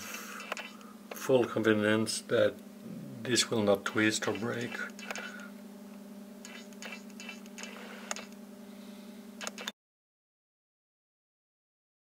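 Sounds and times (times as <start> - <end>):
steady low hum: 0.0 - 9.7.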